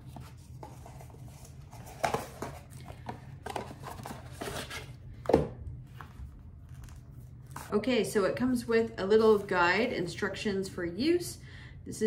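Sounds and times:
cardboard box rustling and scraping: 3.5 - 5.0.

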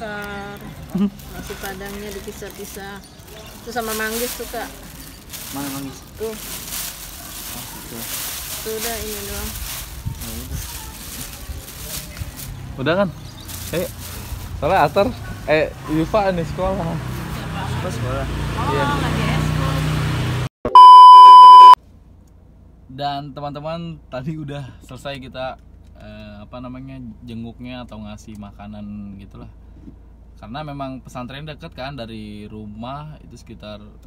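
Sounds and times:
plastic bags rustling: 0.0 - 12.7, 13.3 - 15.0
high electronic beep: 20.7 - 21.8
outdoor background hum: 21.2 - 34.0.

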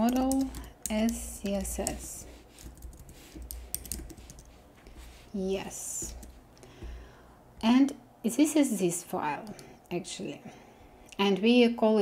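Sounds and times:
keyboard typing: 0.0 - 4.6.

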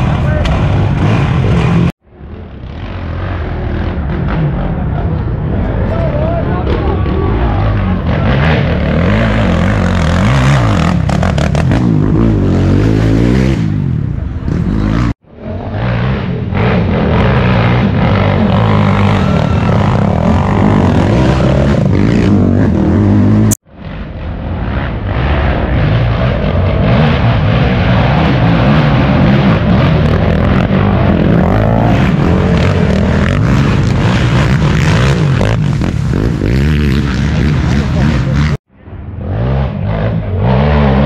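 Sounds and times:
atv engines revving: 0.0 - 41.0.

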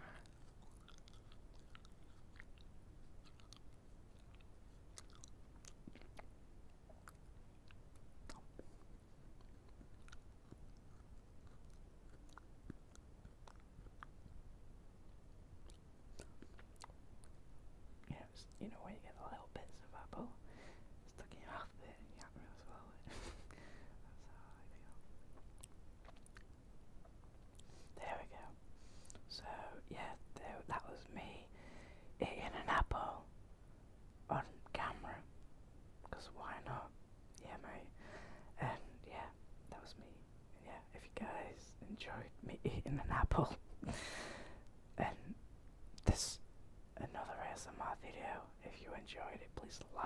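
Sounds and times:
chewing apple mouth clicks: 0.1 - 8.6, 9.4 - 14.3, 15.6 - 17.4, 25.3 - 27.7
man whispering: 18.0 - 20.4, 21.0 - 23.1, 23.9 - 25.0, 27.9 - 28.6, 29.2 - 31.5, 32.2 - 33.3, 34.3 - 35.3, 36.0 - 43.6, 45.0 - 45.4, 46.0 - 50.0.

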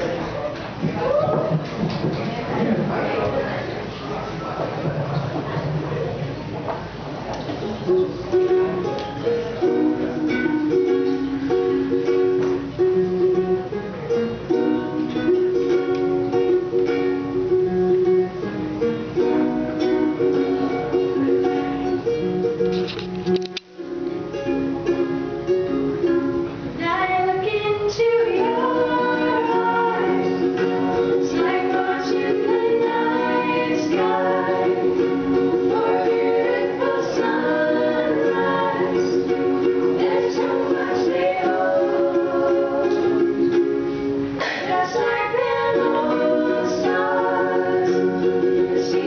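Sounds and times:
ukuleles strumming: 0.0 - 49.0
women singing: 26.8 - 49.0.

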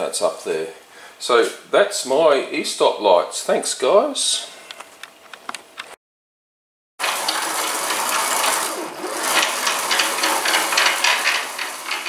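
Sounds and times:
machine carriage clattering on rail: 7.0 - 12.0.

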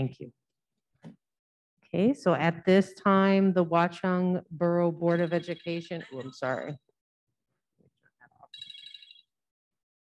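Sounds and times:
electronic phone ringtone: 8.5 - 9.3.

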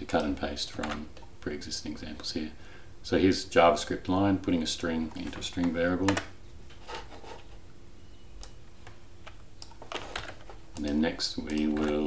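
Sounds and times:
person speaking: 0.0 - 6.4, 10.7 - 12.0
computer keyboard keystrokes: 9.2 - 12.0.

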